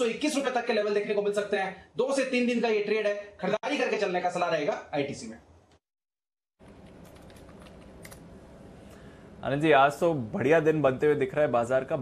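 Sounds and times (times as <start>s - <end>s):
typing on computer keyboard: 6.8s - 8.2s.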